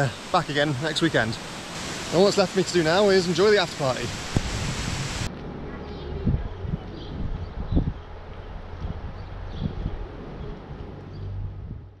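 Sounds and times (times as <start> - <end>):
wind buffeting microphone: 4.0 - 5.3, 6.0 - 12.0.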